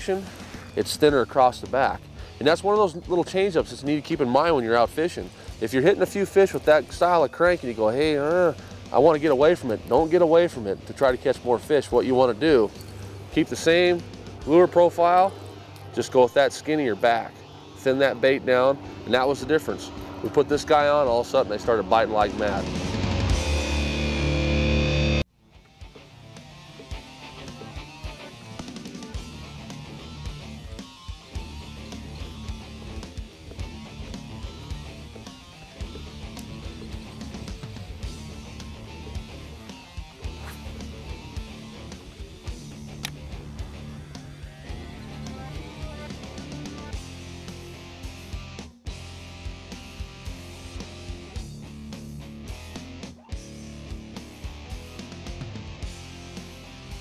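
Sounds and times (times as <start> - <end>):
rock music with guitar: 0.0 - 57.0.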